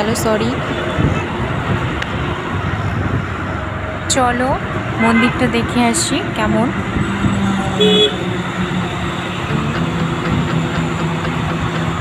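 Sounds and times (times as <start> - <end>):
traffic rumble of engines and tyres: 0.0 - 12.0.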